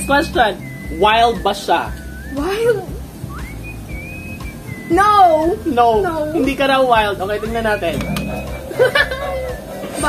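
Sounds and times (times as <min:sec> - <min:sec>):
high whistled note: 0:00.0 - 0:05.6, 0:07.4 - 0:10.0.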